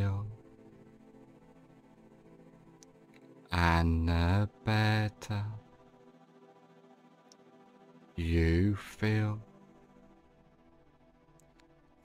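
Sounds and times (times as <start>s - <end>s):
man speaking in a chant-like way: 0.0s - 0.4s, 3.5s - 5.7s, 8.2s - 9.5s
faint ambient music: 0.0s - 12.0s.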